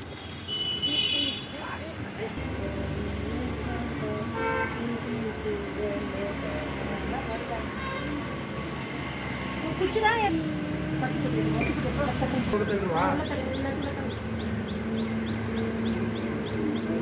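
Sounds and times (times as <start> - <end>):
indistinct voices talking: 0.9 - 17.0.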